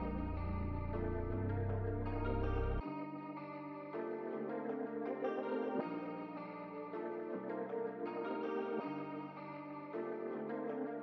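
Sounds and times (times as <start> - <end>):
electric guitar chords with echo: 0.0 - 11.0.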